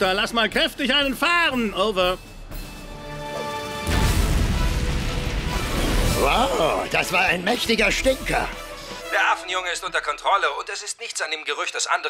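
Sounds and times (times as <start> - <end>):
music: 0.0 - 10.6.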